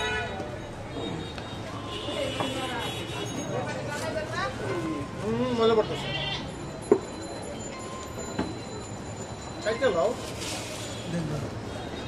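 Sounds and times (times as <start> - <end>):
market voices: 0.0 - 12.0
goat bleating: 5.8 - 6.5.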